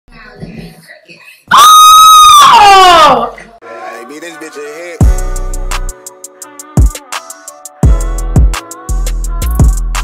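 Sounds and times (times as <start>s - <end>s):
woman screaming: 1.5s - 3.4s.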